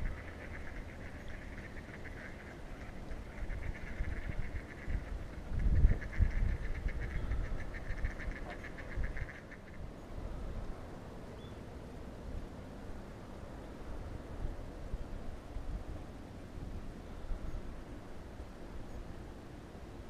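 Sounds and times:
low rumble on microphone: 0.0s - 9.3s
water birds calling: 0.0s - 12.2s.

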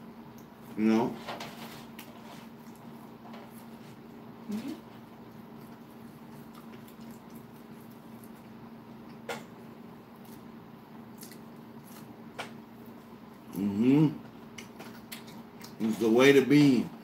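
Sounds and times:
steady hum: 0.0s - 17.0s
chewing and wet mouth sounds: 1.8s - 16.0s.

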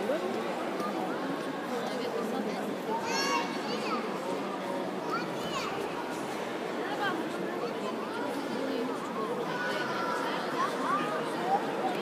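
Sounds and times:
crowd murmuring in a hall: 0.0s - 12.0s.

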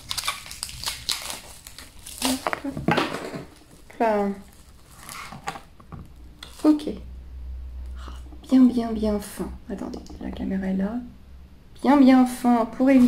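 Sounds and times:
plastic wrapping crinkling: 0.0s - 5.8s.

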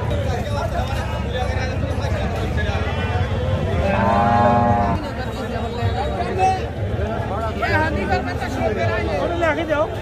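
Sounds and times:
steady background din: 0.0s - 10.0s
cow mooing: 3.8s - 5.0s.

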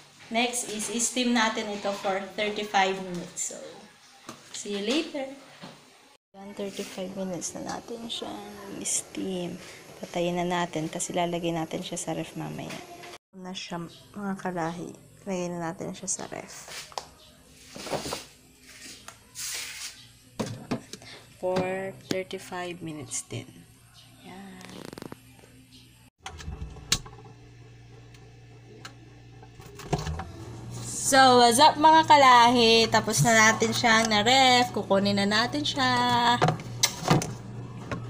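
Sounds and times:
rustling handling noise: 17.6s - 20.0s
short hissing rustle: 17.7s - 20.0s
refrigerator hum: 25.2s - 38.0s.

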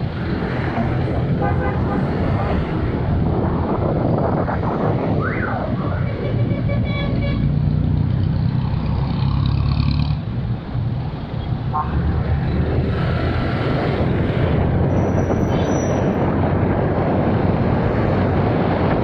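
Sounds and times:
engine and road noise: 0.0s - 19.0s.

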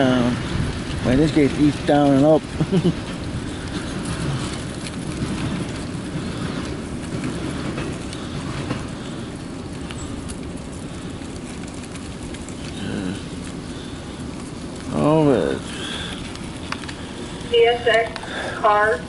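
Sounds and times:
freight train wheels rumbling on rails: 0.0s - 19.0s
faint clicks: 16.0s - 18.3s.

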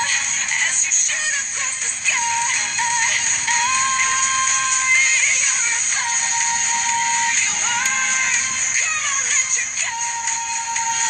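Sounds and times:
pop song with sung melody: 0.0s - 11.0s.

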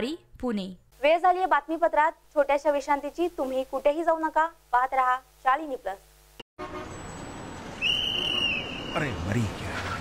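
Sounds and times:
car horn sounding: 6.6s - 7.1s, 8.0s - 9.1s
street traffic: 6.6s - 10.0s.

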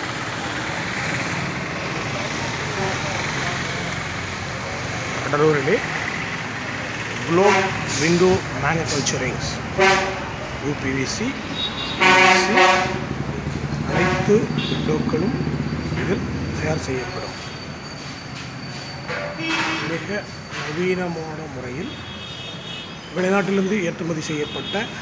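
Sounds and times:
people talking: 0.4s - 6.0s, 7.1s - 11.4s, 12.1s - 13.1s, 13.8s - 17.4s, 19.2s - 22.0s, 23.2s - 25.0s
horn toot: 7.3s - 8.4s, 9.8s - 10.4s, 11.5s - 13.2s, 13.9s - 15.0s.

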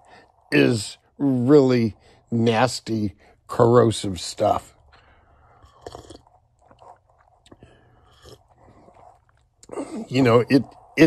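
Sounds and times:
soft breath-like noises: 0.0s - 11.0s
man's voice: 0.6s - 4.6s, 10.0s - 10.7s.

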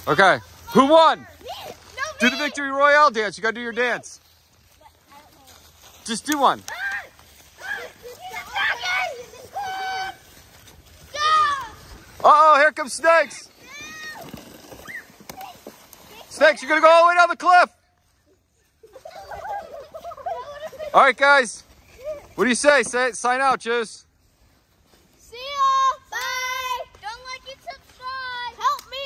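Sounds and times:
plastic sled scraping over snow: 0.0s - 2.7s, 3.7s - 17.3s.

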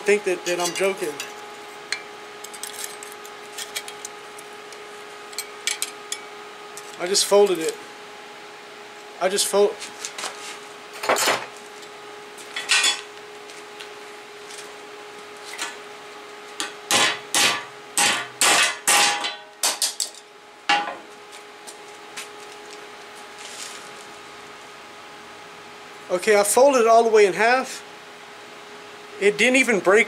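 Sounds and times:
hammer striking sheet steel: 16.6s - 20.0s.

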